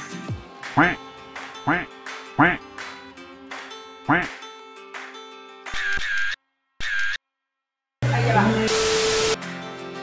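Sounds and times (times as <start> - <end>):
background music with held notes: 0.0 - 5.7, 9.4 - 10.0.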